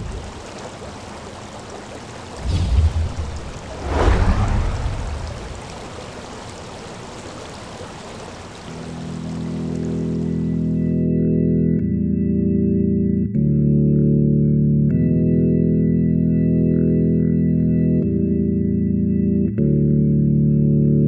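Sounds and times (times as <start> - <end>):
rushing water: 0.0 - 11.0.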